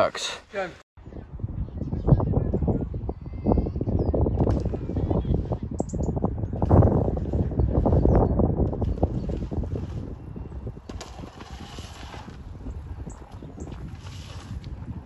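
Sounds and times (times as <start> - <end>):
wind buffeting microphone: 1.0 - 15.0.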